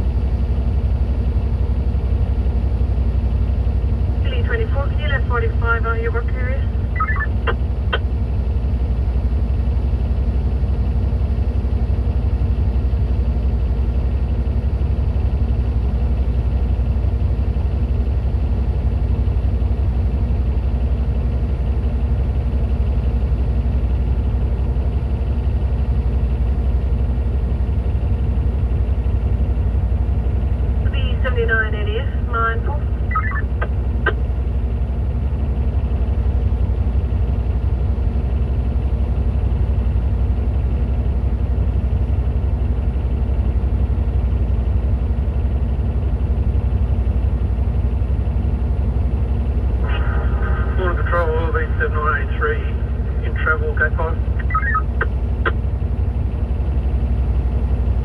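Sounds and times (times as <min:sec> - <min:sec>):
diesel engine idling: 0:00.0 - 0:58.0
voice over two-way radio: 0:04.3 - 0:07.6, 0:30.9 - 0:34.2, 0:49.8 - 0:55.6
radio clicks: 0:07.0 - 0:08.1, 0:54.3 - 0:55.6.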